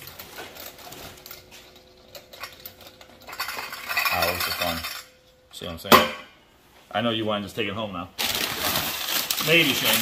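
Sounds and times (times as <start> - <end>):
metallic rattling and scraping: 0.0 - 5.2.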